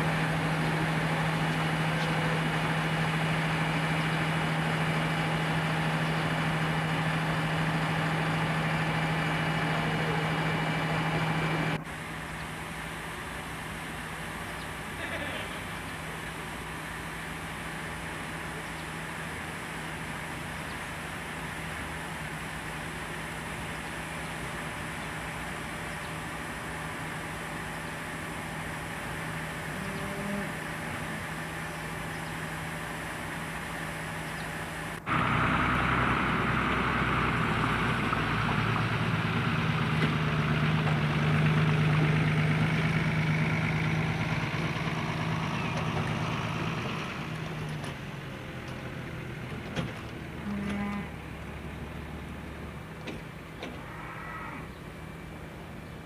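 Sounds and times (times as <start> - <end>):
pump engine running: 0.0 - 53.8.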